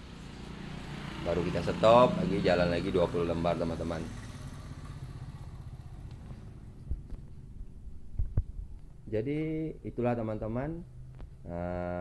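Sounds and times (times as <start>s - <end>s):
small engine rumbling: 0.0s - 8.9s.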